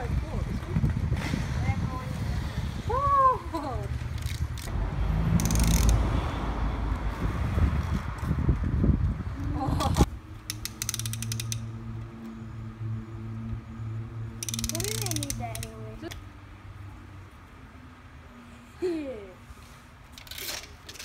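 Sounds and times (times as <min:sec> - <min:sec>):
spinner dial clicking: 0:10.4 - 0:11.7, 0:14.4 - 0:16.2.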